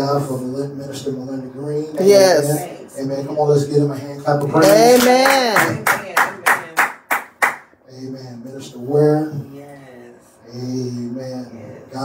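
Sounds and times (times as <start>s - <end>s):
man clapping hands: 4.6s - 7.7s.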